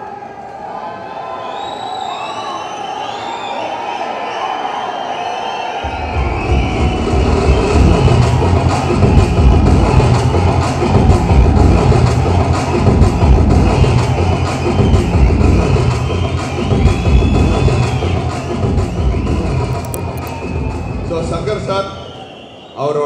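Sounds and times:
crowd cheering and whistling: 0.0s - 23.0s.

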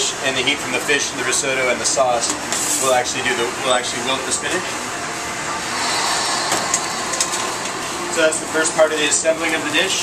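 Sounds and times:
ventilation rushing noise: 0.0s - 10.0s.

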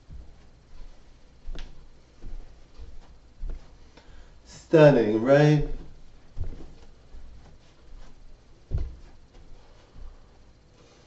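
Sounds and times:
high heel footsteps on carpet: 0.0s - 10.6s.

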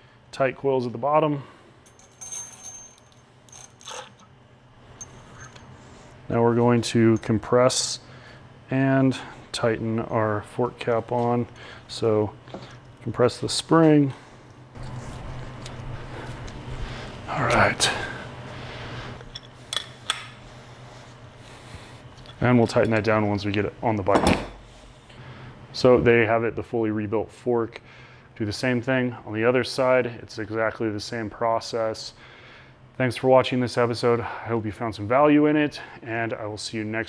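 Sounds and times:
wrench clinking on steel: 1.9s - 4.3s.

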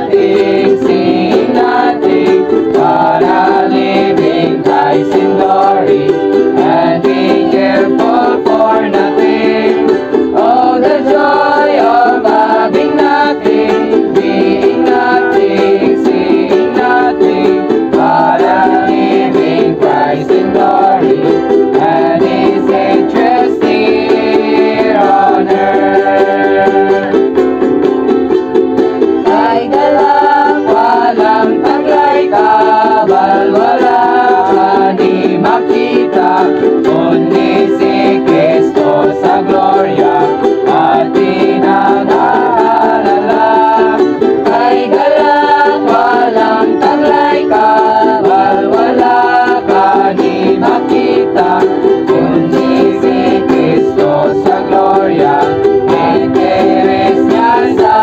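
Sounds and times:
group singing a hymn: 0.0s - 27.6s, 29.0s - 58.0s
ukuleles strumming chords: 0.0s - 58.0s.

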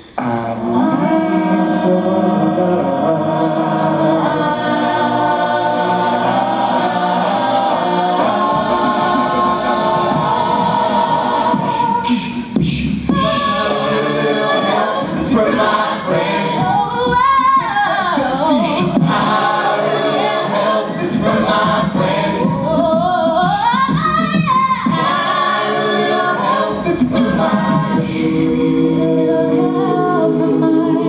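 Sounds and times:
a cappella group singing chords: 0.0s - 31.0s.

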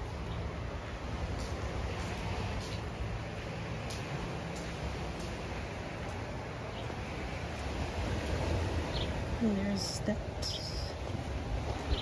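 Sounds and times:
wind on microphone: 10.2s - 12.0s.

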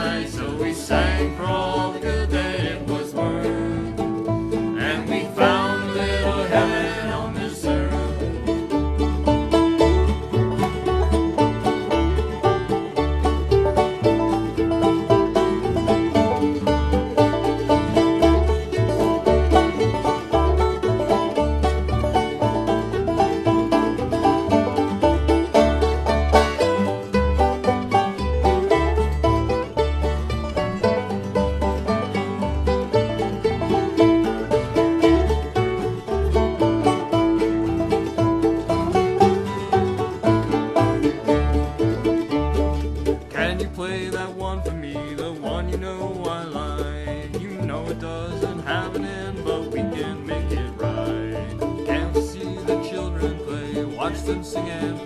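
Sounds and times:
banjo: 0.0s - 55.0s
fiddles: 0.0s - 55.0s
guitar: 0.0s - 55.0s
mandolin: 0.0s - 55.0s
upright bass: 0.0s - 55.0s.

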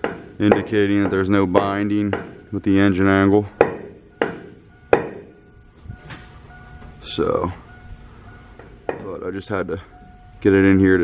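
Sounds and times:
metal shaft knocking: 0.0s - 7.0s, 7.7s - 9.3s.

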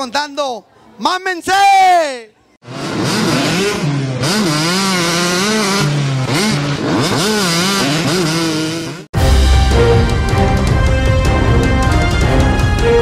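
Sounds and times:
engine revving: 2.6s - 10.9s.

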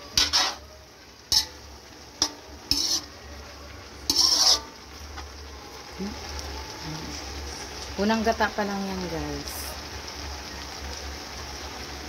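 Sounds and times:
metal spoon scraping a wok: 0.0s - 0.7s, 1.3s - 3.2s, 4.0s - 5.3s
food sizzling: 0.0s - 12.0s.

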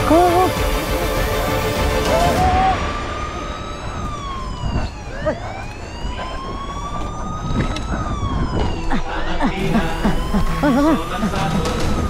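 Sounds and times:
police siren wailing: 0.0s - 12.0s.

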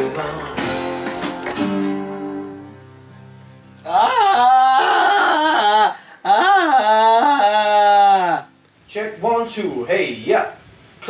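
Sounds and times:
man singing wordless notes: 0.0s - 1.4s.

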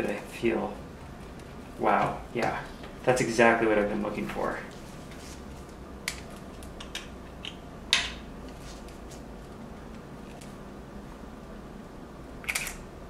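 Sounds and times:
camera clicks: 12.4s - 12.8s.

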